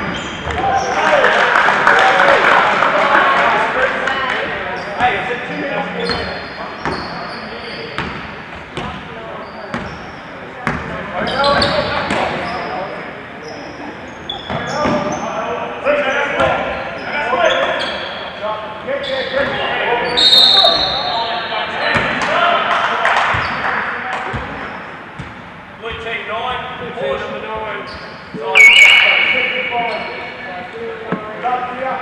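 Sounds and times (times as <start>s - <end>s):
sneaker squeaks on floor: 0.0s - 1.0s, 4.8s - 5.2s, 6.0s - 12.8s, 13.4s - 15.4s, 16.1s - 18.4s, 19.0s - 21.2s, 23.3s - 23.6s, 27.8s - 30.4s.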